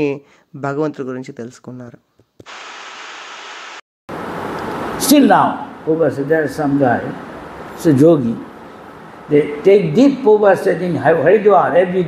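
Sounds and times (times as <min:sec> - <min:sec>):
static hiss: 0:02.4 - 0:03.8.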